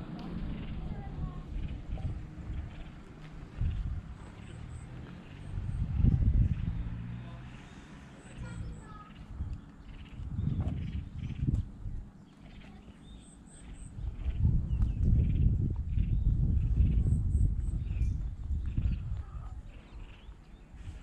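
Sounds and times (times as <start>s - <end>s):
wind buffeting microphone: 0.0s - 21.0s
footsteps on concrete: 3.0s - 4.0s.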